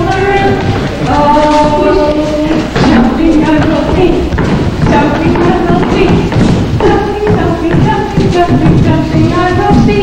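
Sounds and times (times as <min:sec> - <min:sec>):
voices singing held notes: 0:00.0 - 0:04.3
children's feet stamping on stage: 0:00.0 - 0:10.0.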